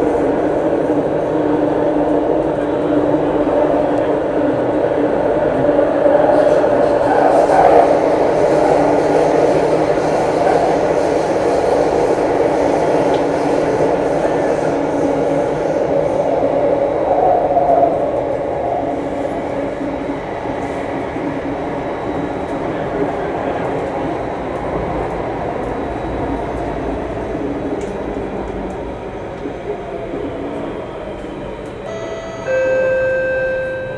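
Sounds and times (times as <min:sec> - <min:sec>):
train running from inside carriage: 0:00.0 - 0:33.9.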